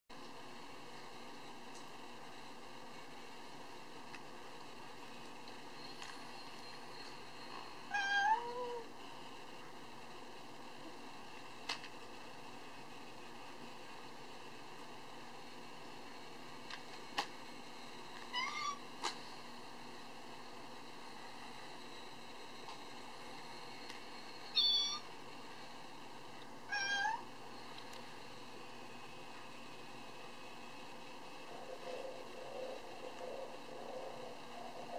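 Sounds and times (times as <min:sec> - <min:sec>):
toy cat meow: 0:18.3 - 0:18.8, 0:24.6 - 0:25.0, 0:26.7 - 0:27.2.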